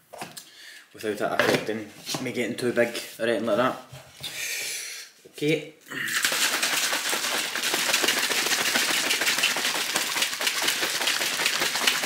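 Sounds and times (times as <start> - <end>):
plastic shaker bottle rattling: 6.2 - 12.0.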